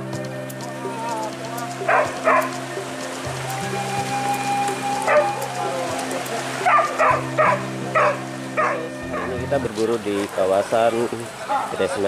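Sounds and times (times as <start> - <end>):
background music with low drone: 0.0 - 10.5
dogs barking: 1.8 - 2.6, 5.1 - 9.4.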